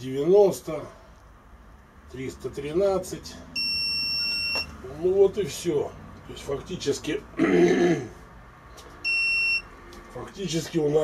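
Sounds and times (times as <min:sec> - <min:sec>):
high-pitched electronic beep: 0:03.6 - 0:04.8, 0:09.0 - 0:09.7.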